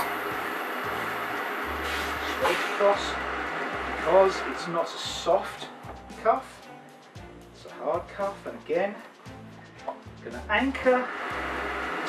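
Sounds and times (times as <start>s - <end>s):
steam iron hissing: 0.0s - 5.7s, 10.8s - 12.0s
low hum: 0.0s - 6.3s.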